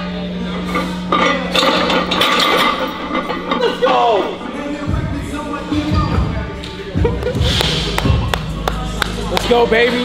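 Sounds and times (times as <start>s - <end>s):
weight plates clinking: 0.6s - 5.5s
laughter: 7.0s - 7.5s.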